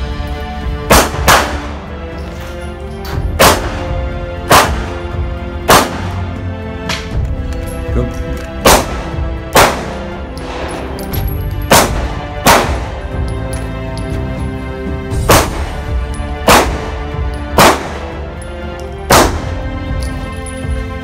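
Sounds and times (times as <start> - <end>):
background music: 0.0 - 21.0
pistol shots: 0.8 - 1.8, 3.4 - 6.3, 8.6 - 13.2, 15.2 - 18.2, 19.0 - 19.7.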